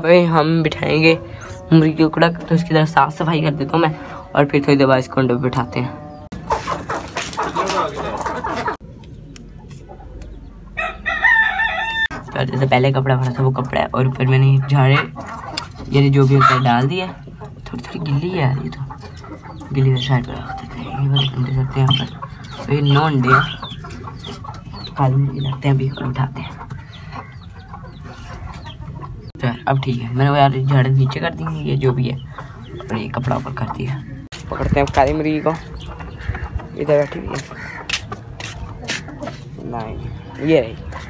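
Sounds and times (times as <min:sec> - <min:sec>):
chicks peeping: 0:00.0 - 0:41.0
rooster crowing: 0:10.8 - 0:12.2.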